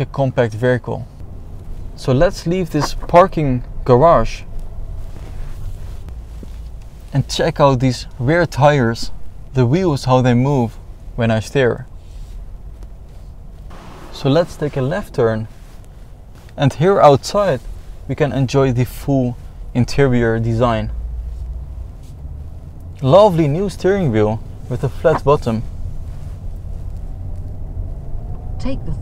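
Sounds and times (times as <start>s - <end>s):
car rumbling slowly: 0.0s - 29.0s.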